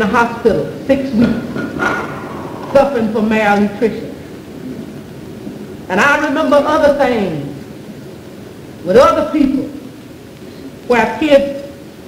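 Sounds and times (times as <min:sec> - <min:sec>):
old recording hiss: 0:00.0 - 0:12.0
woman speaking: 0:02.7 - 0:04.1, 0:10.9 - 0:11.7.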